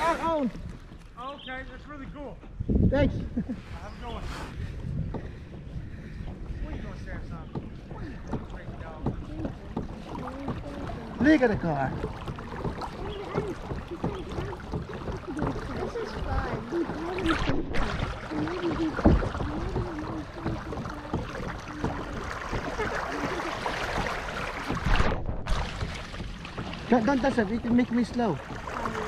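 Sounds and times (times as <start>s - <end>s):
water washing along boat hull: 0.0s - 1.6s, 3.4s - 29.0s
low irregular rumble: 0.6s - 29.0s
faint voices: 6.4s - 24.1s.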